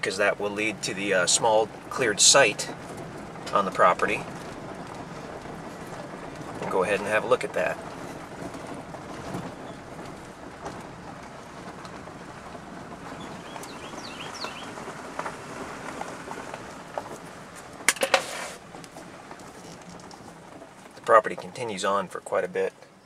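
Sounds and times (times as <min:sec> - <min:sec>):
vehicle engine and tyres: 0:00.0 - 0:23.0.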